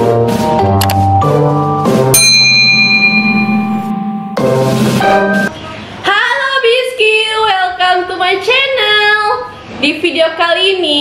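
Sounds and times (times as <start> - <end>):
background music: 0.0 - 5.5
bright bell chime: 2.2 - 4.4.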